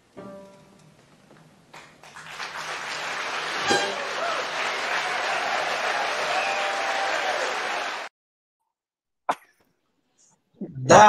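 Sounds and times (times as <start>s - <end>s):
audience applauding and cheering: 1.7s - 8.1s
man speaking: 10.6s - 11.0s.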